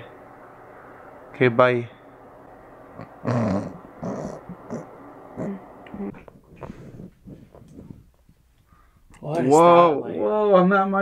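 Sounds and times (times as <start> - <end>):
laughing: 3.0 - 8.0.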